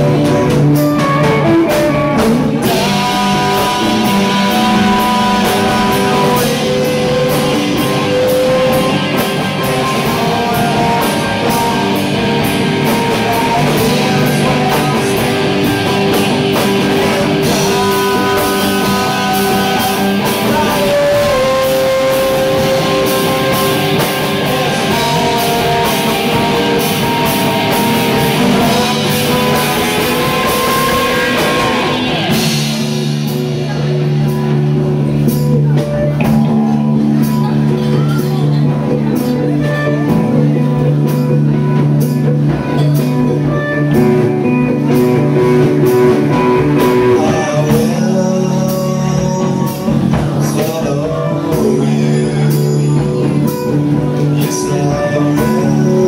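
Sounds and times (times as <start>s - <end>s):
bass guitar: 0.0s - 56.0s
drum kit with cymbals: 0.0s - 56.0s
electric guitar sustained notes: 0.0s - 56.0s
rock band playing: 0.0s - 56.0s.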